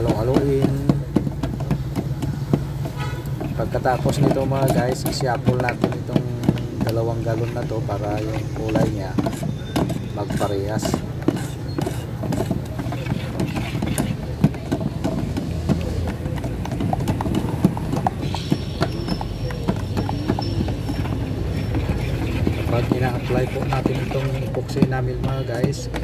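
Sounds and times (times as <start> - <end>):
sticks knocking against metal cans: 0.0 - 26.0.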